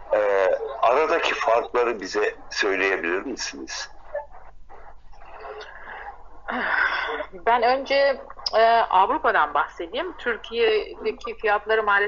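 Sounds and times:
person speaking: 0.0s - 3.9s, 5.3s - 12.0s
person breathing close to microphone: 5.6s - 7.3s.

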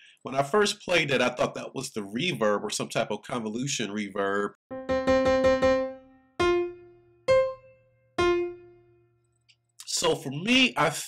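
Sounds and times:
piano notes ringing: 4.7s - 9.1s.

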